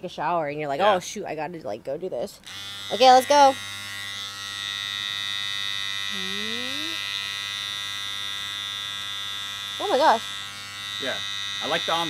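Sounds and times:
body trimmer buzzing: 0:02.4 - 0:12.0.

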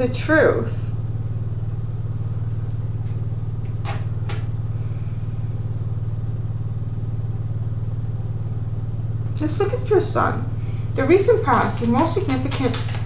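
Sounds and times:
low droning hum: 0:00.0 - 0:13.0.

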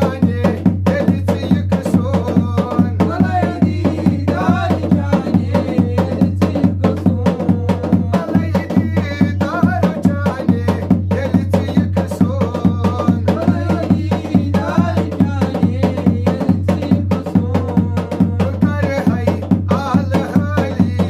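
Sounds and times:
barrel drum beaten fast: 0:00.0 - 0:21.0.

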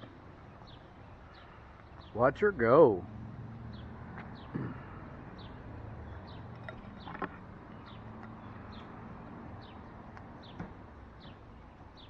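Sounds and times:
songbird chirping: 0:00.0 - 0:02.5, 0:03.6 - 0:12.0
outdoor background noise: 0:00.0 - 0:12.0.

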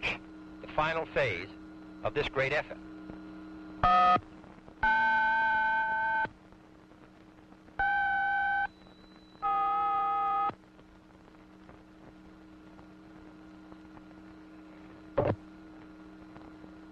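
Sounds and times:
low steady hum: 0:00.0 - 0:16.9.

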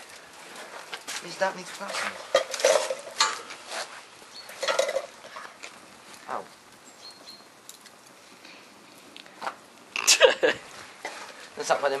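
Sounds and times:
fire crackling: 0:00.0 - 0:12.0.

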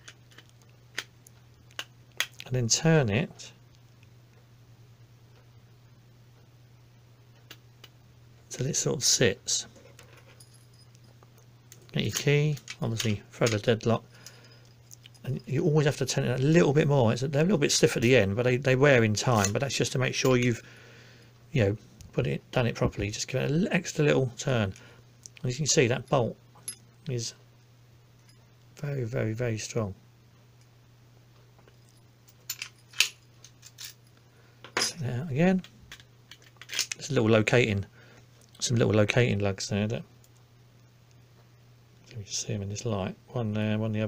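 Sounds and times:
steady low hum: 0:00.0 - 0:44.0
metallic lock parts clinking: 0:09.8 - 0:16.5, 0:31.7 - 0:34.1, 0:35.6 - 0:37.1
person speaking: 0:11.8 - 0:14.2, 0:15.0 - 0:20.6, 0:21.5 - 0:27.4
metal lock parts clicking: 0:32.4 - 0:34.0, 0:35.9 - 0:37.0.

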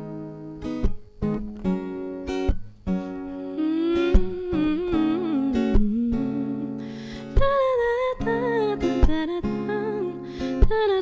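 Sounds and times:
acoustic guitar strummed: 0:00.0 - 0:11.0
person humming: 0:03.4 - 0:11.0.

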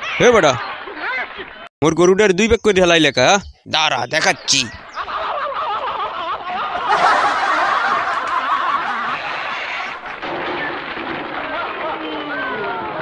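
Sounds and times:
crowd laughing and shouting: 0:00.0 - 0:01.7, 0:04.9 - 0:13.0.

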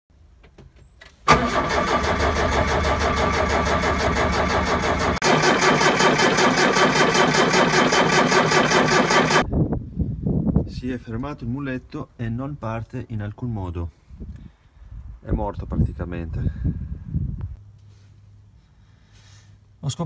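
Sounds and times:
starter cranking diesel engine: 0:01.3 - 0:09.5.

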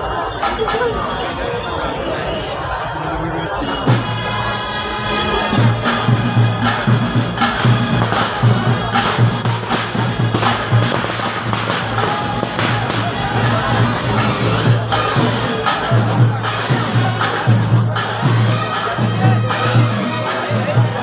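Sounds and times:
crowd noise: 0:00.0 - 0:21.0
drums in quick rhythm: 0:05.3 - 0:21.0.

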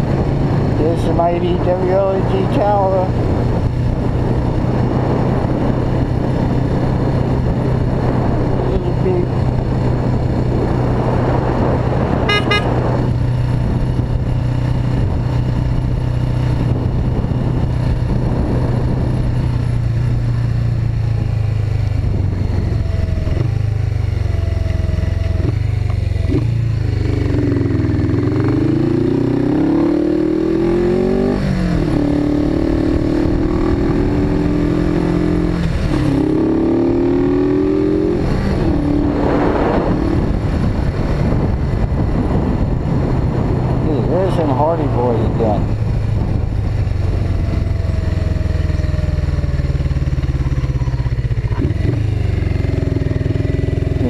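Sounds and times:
wind rush: 0:00.0 - 0:24.0, 0:26.6 - 0:54.0
motorcycle engine: 0:00.0 - 0:54.0
high beep: 0:12.3 - 0:12.7.

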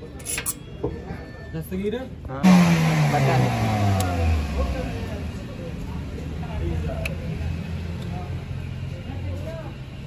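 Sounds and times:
motor winding down: 0:02.5 - 0:04.8.

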